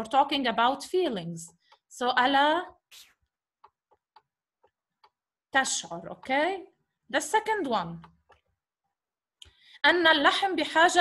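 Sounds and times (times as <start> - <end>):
woman speaking: 0.0 - 2.8, 5.6 - 8.1, 9.8 - 11.0.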